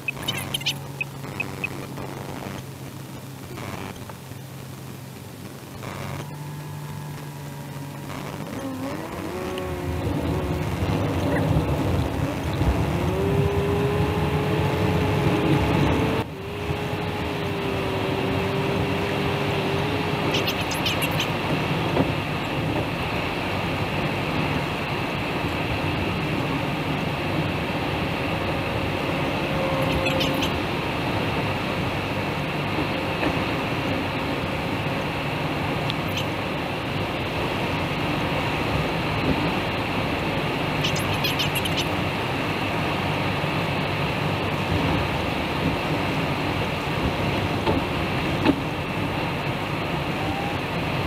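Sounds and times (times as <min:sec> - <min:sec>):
car road and engine noise: 0:00.0 - 0:51.0
sustained hum note: 0:05.6 - 0:15.4, 0:29.1 - 0:30.7.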